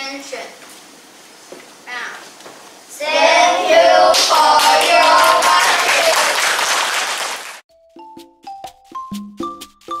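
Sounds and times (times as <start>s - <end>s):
children's voices in unison: 3.0s - 6.4s
applause: 4.1s - 7.6s.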